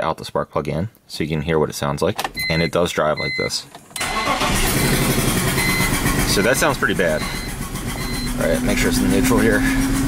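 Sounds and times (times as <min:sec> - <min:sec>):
car engine starting and running rough: 0:04.0 - 0:10.0.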